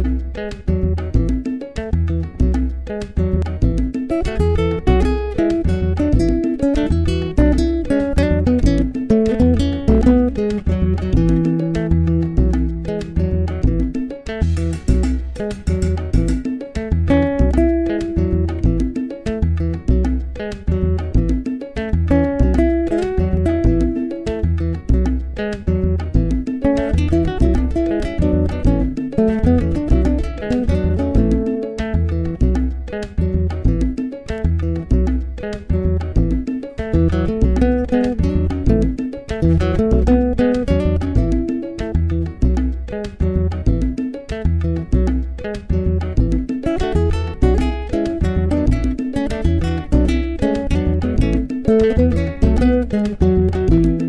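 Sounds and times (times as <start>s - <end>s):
classical guitar playing: 0.0s - 54.0s
pulsing bass line: 0.0s - 54.0s.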